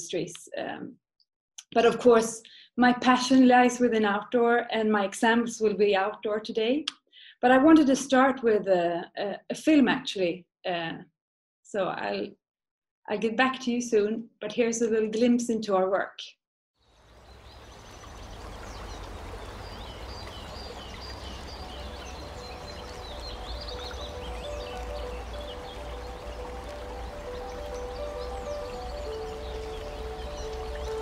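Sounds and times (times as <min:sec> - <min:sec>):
birds chirping: 0:17.0 - 0:31.0
soft sustained music notes: 0:17.5 - 0:31.0.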